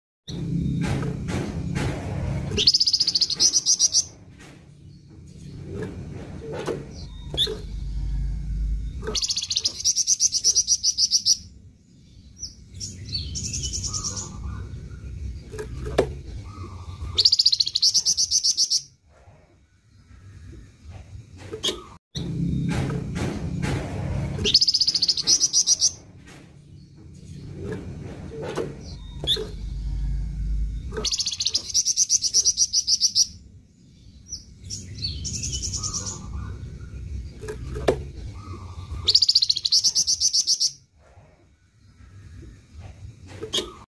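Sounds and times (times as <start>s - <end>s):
songbird trilling: 9.0s - 11.5s, 16.4s - 18.9s, 30.8s - 33.4s, 38.3s - 40.8s.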